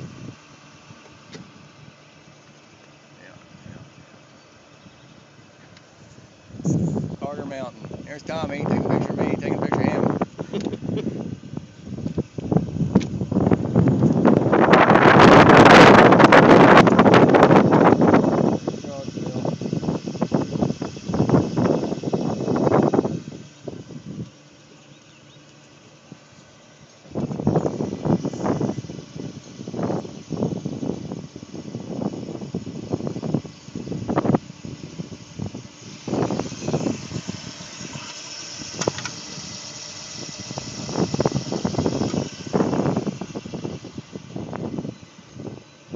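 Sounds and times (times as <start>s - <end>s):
wind buffeting microphone: 5.9s - 24.4s, 27.0s - 45.9s.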